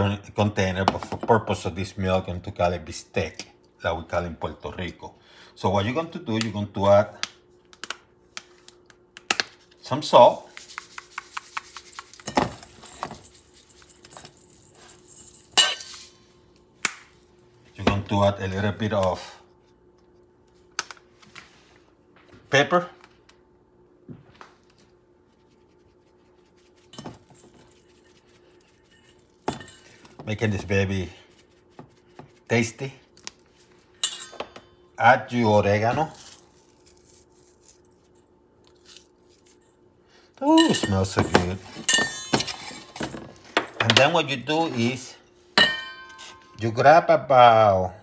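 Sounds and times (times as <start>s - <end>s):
kitchen containers knocking and clinking: 40.6s - 44.2s.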